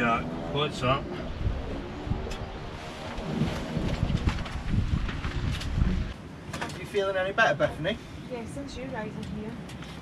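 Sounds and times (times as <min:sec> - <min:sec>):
wind buffeting microphone: 0:01.0 - 0:06.2.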